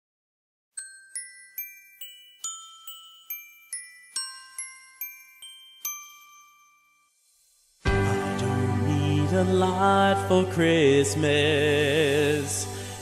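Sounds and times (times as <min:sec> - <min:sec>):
bell-like chime melody: 0:00.8 - 0:07.4
musical backing with bass: 0:07.8 - 0:13.0.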